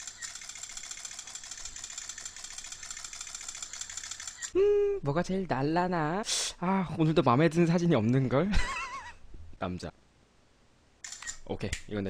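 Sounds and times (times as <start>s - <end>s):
camera shutter clicks in rapid burst: 0.0s - 4.6s, 11.0s - 11.4s.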